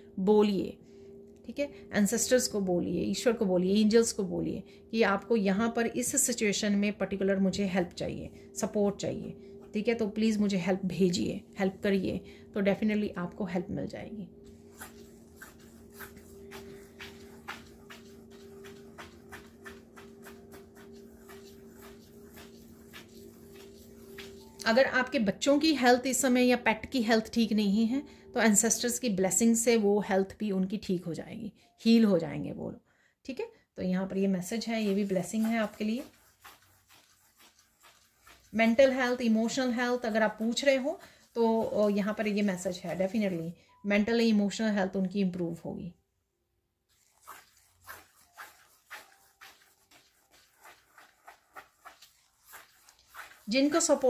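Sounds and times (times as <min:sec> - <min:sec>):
faint low hum: 0:00.0 - 0:29.8
fingers sweeping through sand: 0:14.7 - 0:24.6, 0:46.9 - 0:54.0.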